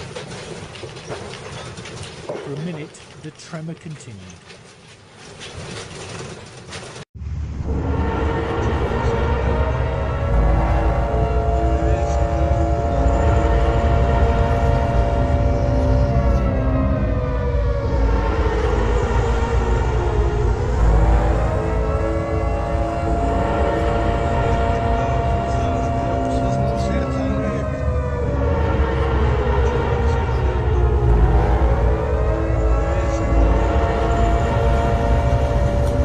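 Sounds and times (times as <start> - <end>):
low rumble: 7.2 - 36.0
warning siren wailing: 7.3 - 36.0.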